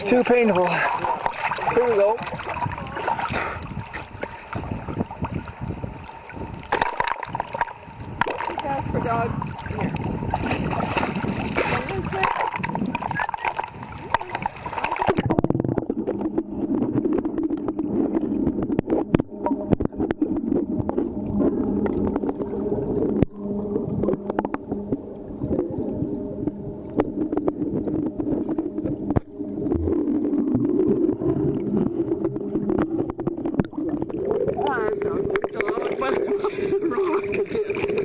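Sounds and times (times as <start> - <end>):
muffled underwater churning: 0.0 - 38.0.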